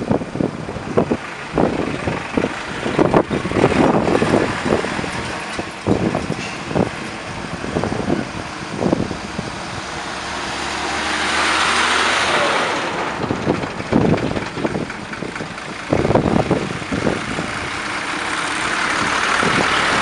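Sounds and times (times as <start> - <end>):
vehicles passing by: 0.0 - 20.0.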